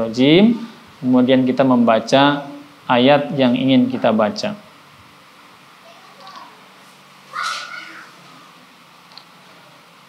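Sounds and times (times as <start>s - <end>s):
high-pitched animal call: 7.3s - 8.2s.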